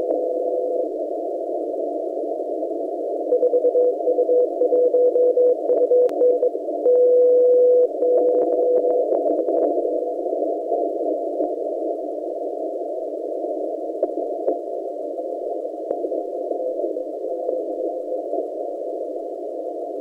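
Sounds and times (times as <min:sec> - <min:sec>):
static clicks: 0:00.0 - 0:00.9, 0:03.3 - 0:11.6, 0:14.0 - 0:14.7, 0:15.6 - 0:19.0
radio band hiss: 0:00.0 - 0:20.0
morse code beacon: 0:03.3 - 0:09.1.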